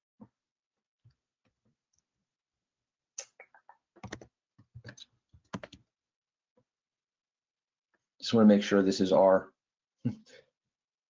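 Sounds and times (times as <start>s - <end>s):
computer keyboard typing: 4.0s - 5.8s.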